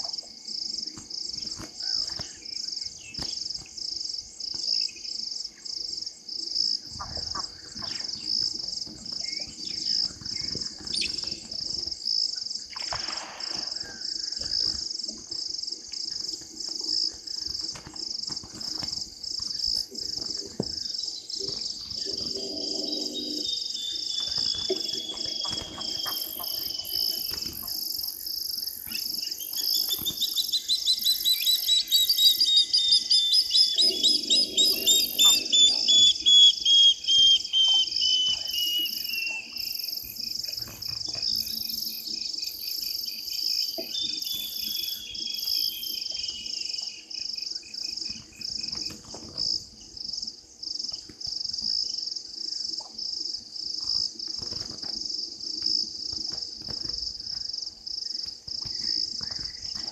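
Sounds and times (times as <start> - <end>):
pulsed insect chirping: 0.0 - 59.9.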